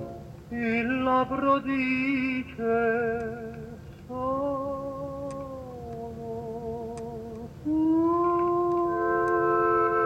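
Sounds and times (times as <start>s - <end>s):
held sung note with vibrato: 7.7s - 10.0s.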